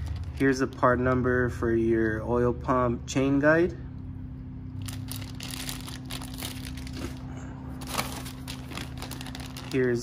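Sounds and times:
steady low hum: 0:00.0 - 0:10.0
plastic bags and paper crinkling: 0:04.8 - 0:10.0.

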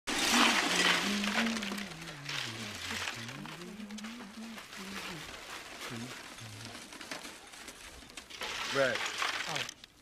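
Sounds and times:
ice cubes clattering into metal tub: 0:00.1 - 0:03.6, 0:05.4 - 0:09.8.

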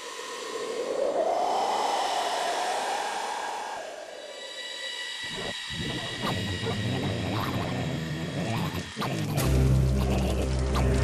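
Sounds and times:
rushing wind-like whoosh: 0:00.0 - 0:05.6.

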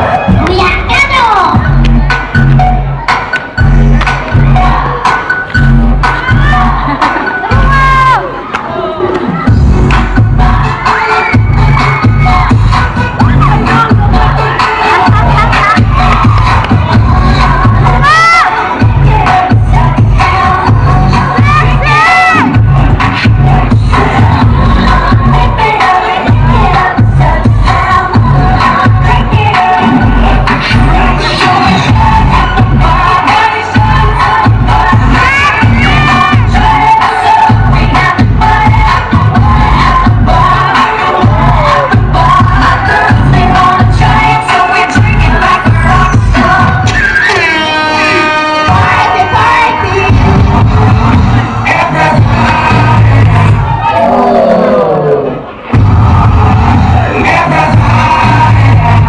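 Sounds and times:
crowd cheering and shouting: 0:00.0 - 0:59.0
dance music with pulsing bass: 0:00.0 - 0:59.0.

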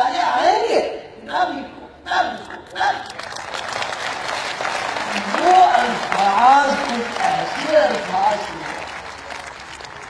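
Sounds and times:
audience applauding: 0:03.0 - 0:10.0.

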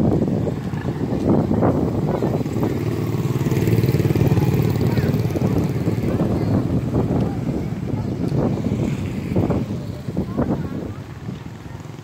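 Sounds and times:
motorbike engines passing: 0:00.0 - 0:12.0.

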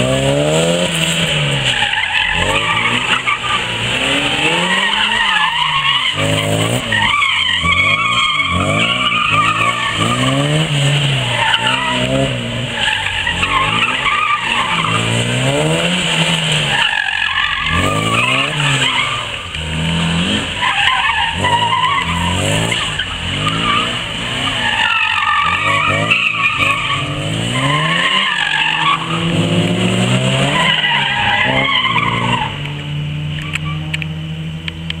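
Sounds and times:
car engine revving: 0:00.0 - 0:35.0
tyres squealing on concrete: 0:01.0 - 0:32.7, 0:33.3 - 0:34.1.

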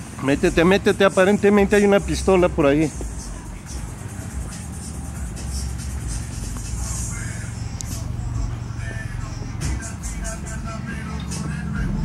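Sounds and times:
background music: 0:00.0 - 0:12.0
cars idling: 0:00.0 - 0:12.0.

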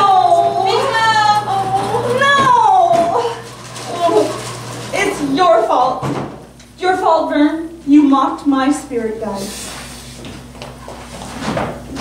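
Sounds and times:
woman wailing: 0:00.0 - 0:04.4.

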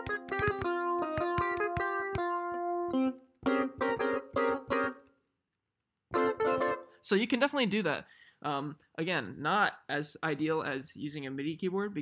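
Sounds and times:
electronic clavinet notes: 0:00.0 - 0:05.0.

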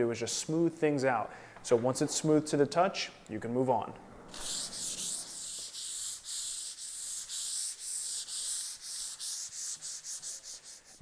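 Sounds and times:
sanding block scraping wood: 0:04.3 - 0:11.0.

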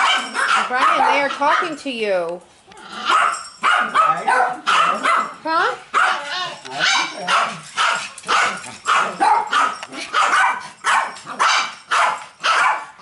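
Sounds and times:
small dogs barking: 0:00.0 - 0:01.8, 0:02.9 - 0:13.0.

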